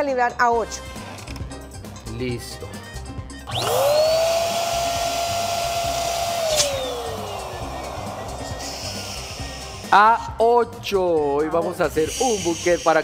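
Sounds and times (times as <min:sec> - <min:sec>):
balloon inflator motor whine: 0:03.4 - 0:10.0.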